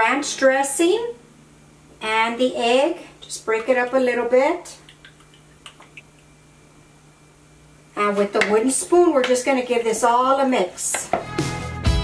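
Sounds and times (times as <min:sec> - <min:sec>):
utensil tapping in mixing bowl: 0:04.8 - 0:06.0.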